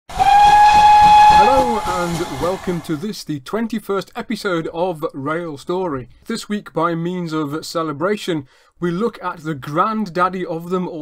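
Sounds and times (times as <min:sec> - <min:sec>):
steam locomotive whistle: 0:00.1 - 0:02.9
steam hissing: 0:00.1 - 0:03.0.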